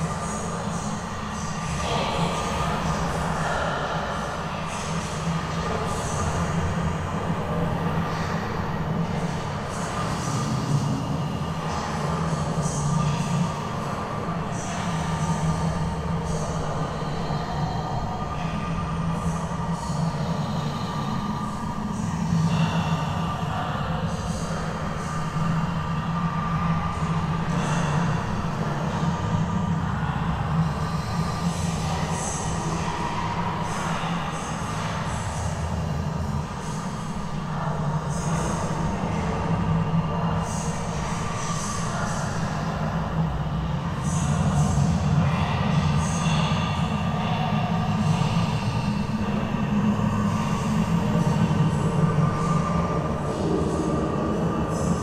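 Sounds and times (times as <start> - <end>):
low rumbling drone: 0.0 - 55.0.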